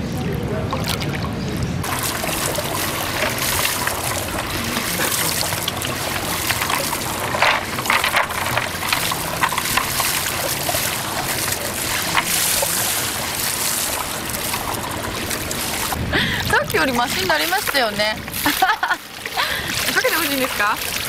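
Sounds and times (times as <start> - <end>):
pool water trickling: 0.0 - 21.0.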